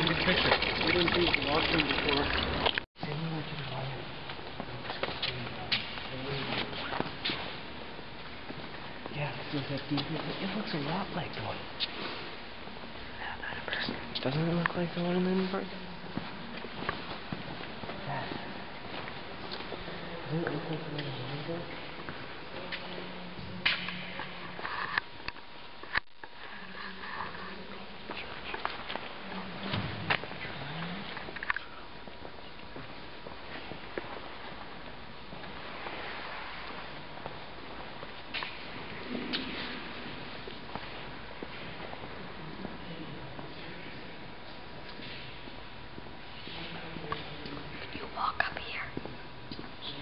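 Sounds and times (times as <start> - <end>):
person whispering: 26.5 - 28.6, 47.9 - 49.1.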